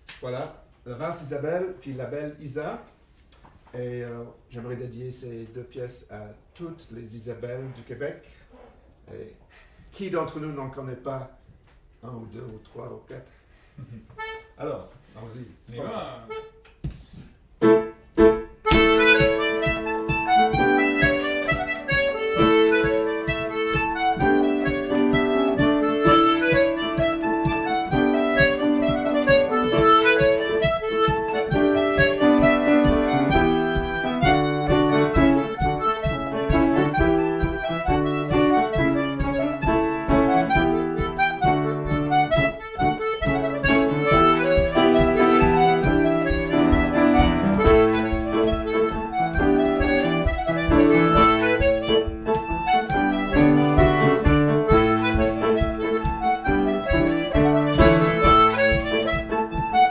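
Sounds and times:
button accordion melody: 14.1 - 14.7, 16.2 - 16.7, 17.6 - 59.9
piano accompaniment: 17.6 - 59.9.

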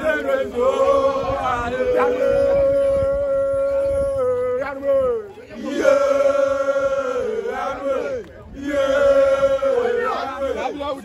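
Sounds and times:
group singing a chant: 0.0 - 2.9, 5.5 - 11.0.

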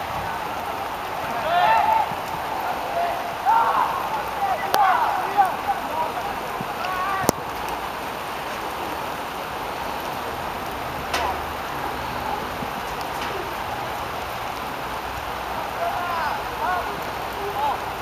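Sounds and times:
distant shout: 0.0 - 7.6, 11.1 - 18.0
rain falling: 0.0 - 18.0.

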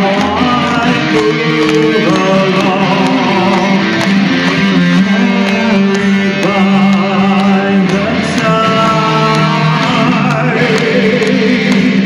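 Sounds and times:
metal band playing live: 0.0 - 12.0.

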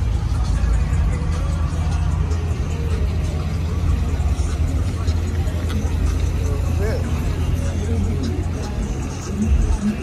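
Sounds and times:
car engines rumbling: 0.0 - 10.0
people talking: 0.2 - 10.0.

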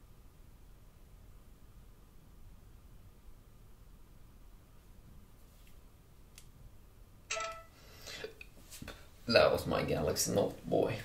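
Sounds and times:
phone alert chime: 7.3 - 7.7.

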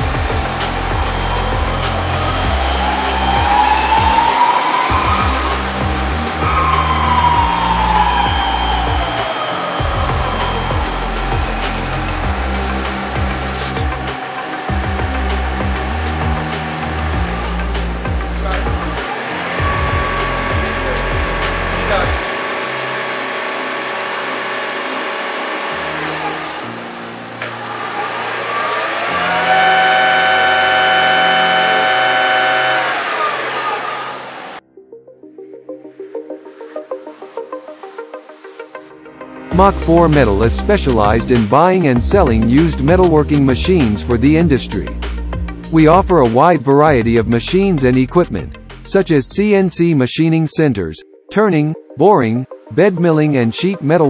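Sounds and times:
lathe spindle whine: 0.0 - 34.6.

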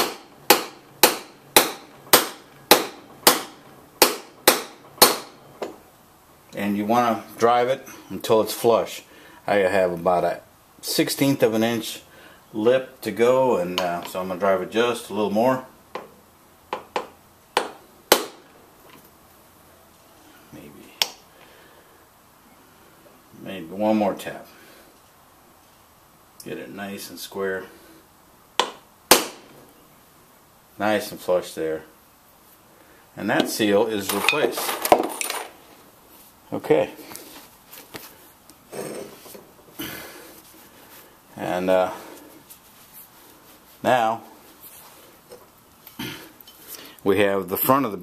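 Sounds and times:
hammer striking metal: 0.0 - 5.4.

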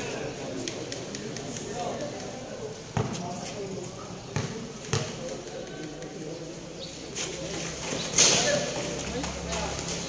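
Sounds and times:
spectators chatting: 0.0 - 10.0
basketball bouncing on concrete: 2.9 - 3.4, 4.3 - 6.2.

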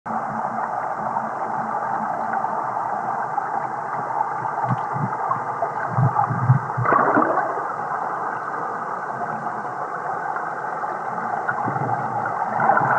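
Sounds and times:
muffled underwater rushing water: 0.1 - 12.9.

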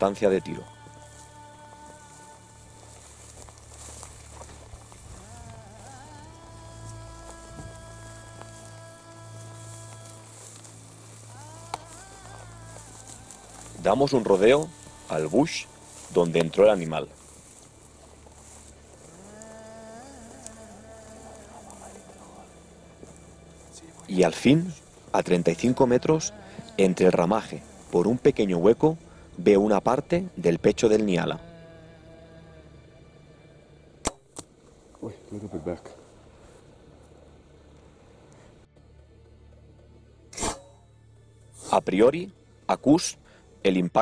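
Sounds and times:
flying insect buzzing: 0.7 - 13.8, 17.2 - 24.0, 31.4 - 33.8
bowstring snap: 34.0 - 34.6.

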